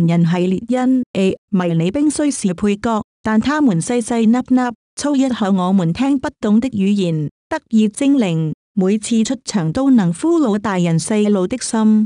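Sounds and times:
person reading aloud: 0.0 - 12.0.

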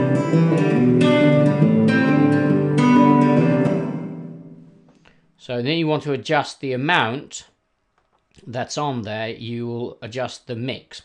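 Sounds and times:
acoustic guitar chords with reverb: 0.0 - 4.9.

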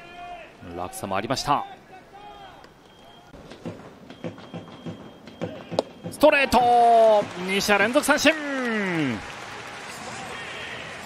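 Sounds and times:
stadium crowd: 4.8 - 11.0
people clapping: 5.8 - 11.0.

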